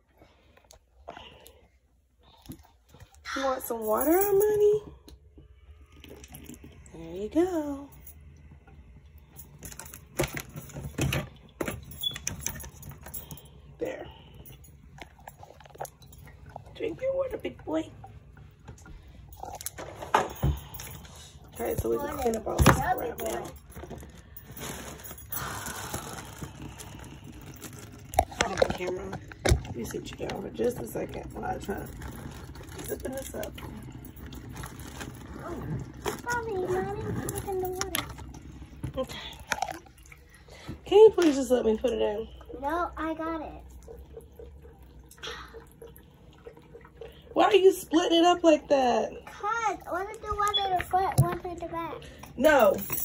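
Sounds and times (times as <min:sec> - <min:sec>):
cat lapping water: 0:05.2 - 0:06.9, 0:42.2 - 0:47.8.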